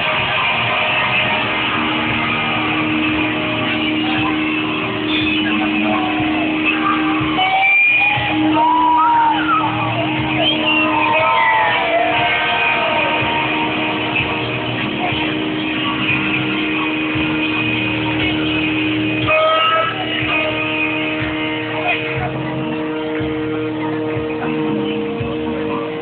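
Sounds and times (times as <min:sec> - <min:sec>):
live rock band playing: 0:00.0 - 0:26.0.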